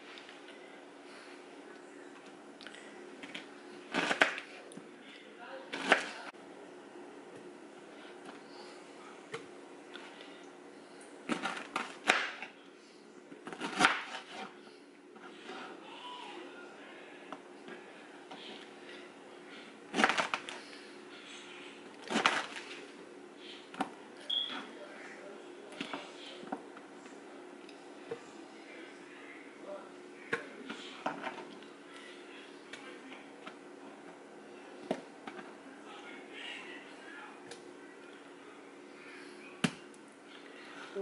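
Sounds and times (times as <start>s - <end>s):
steady low hum: 0.0s - 41.0s
knife cutting pineapple: 3.9s - 4.5s.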